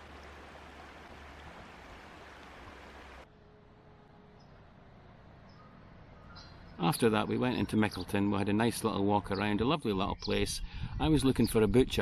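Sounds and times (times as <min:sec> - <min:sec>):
river water running over stones: 0:00.0 - 0:03.3
faint bird chirps: 0:05.5 - 0:08.1.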